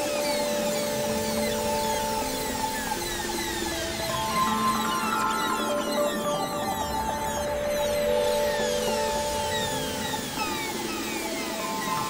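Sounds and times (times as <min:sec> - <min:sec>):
ambient synthesizer music: 0:00.0 - 0:12.0.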